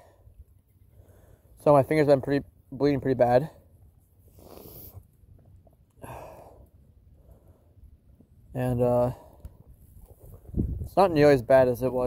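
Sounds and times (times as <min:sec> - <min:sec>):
man breathing softly: 0:00.0 - 0:01.6, 0:04.2 - 0:05.1, 0:06.0 - 0:08.0.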